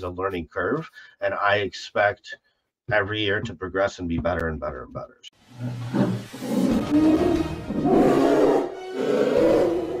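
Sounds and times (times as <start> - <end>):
animal roars: 5.6 - 10.0
music: 5.7 - 10.0.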